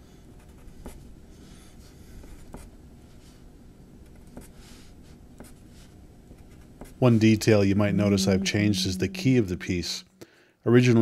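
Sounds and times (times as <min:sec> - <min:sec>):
pencil scratching on paper: 0:00.4 - 0:01.1, 0:02.2 - 0:02.7, 0:04.2 - 0:08.4.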